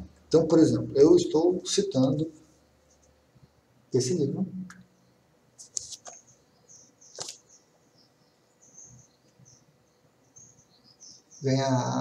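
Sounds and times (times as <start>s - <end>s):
paperback book clicks and rustles: 7.2s - 7.4s.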